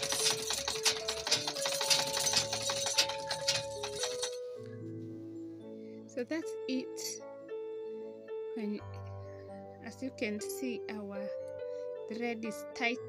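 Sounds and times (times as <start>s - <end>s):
bobbin spinning: 0.0s - 4.4s
sewing machine clattering: 0.0s - 4.5s
background music with held notes: 0.0s - 13.0s.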